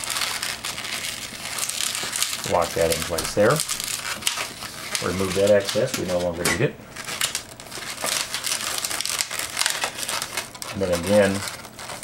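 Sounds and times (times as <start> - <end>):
balloon crackles: 0.0 - 12.0
balloon rubbery rustling: 0.0 - 12.0.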